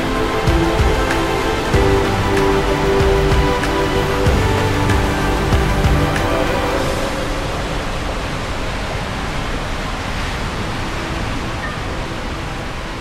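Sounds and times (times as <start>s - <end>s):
music: 0.0s - 8.0s
rushing water: 0.0s - 13.0s.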